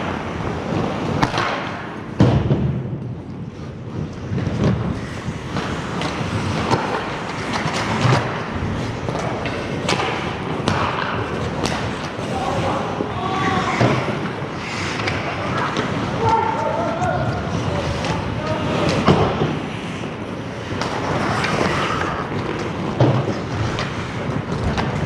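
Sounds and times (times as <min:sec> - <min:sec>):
skates scraping ice: 0:00.0 - 0:25.0
sticks hitting puck: 0:00.7 - 0:03.2, 0:04.0 - 0:25.0
puck hitting boards: 0:01.0 - 0:02.9, 0:05.5 - 0:12.2, 0:13.7 - 0:18.2, 0:18.8 - 0:19.7, 0:20.7 - 0:25.0.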